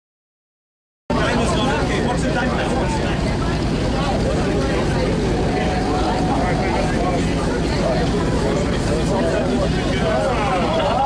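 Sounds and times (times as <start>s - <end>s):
boat engine rumble: 1.1s - 11.0s
indistinct voices: 1.1s - 11.0s.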